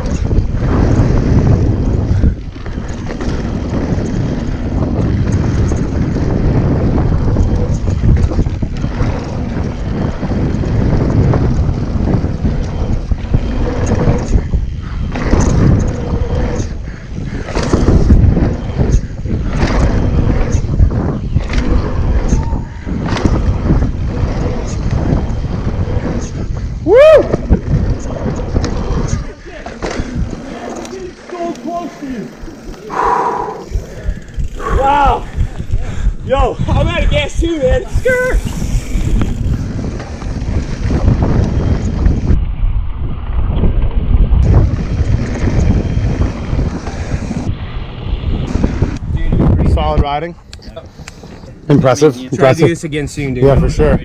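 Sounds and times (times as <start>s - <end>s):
bike rattling over bumps: 0.0s - 33.0s, 33.6s - 54.0s
bike tyres on dirt: 0.0s - 54.0s
wind rushing over microphone: 0.0s - 54.0s.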